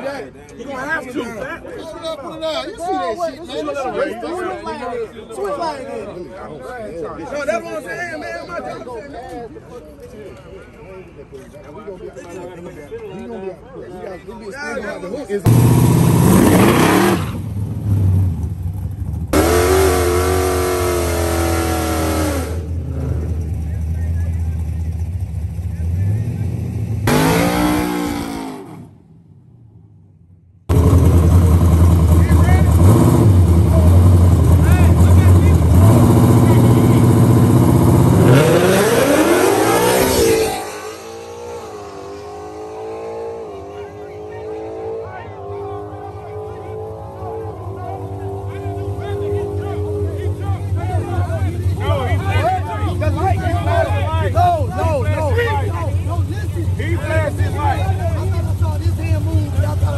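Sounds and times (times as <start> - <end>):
racing car engines revving: 15.4 - 29.1, 30.7 - 59.9
car accelerating through gears: 15.5 - 18.3, 19.4 - 23.6, 26.2 - 28.9, 30.7 - 50.4.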